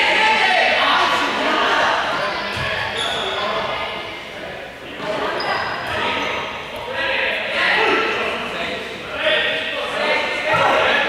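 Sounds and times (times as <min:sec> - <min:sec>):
players shouting in a hall: 0:00.0 - 0:04.3.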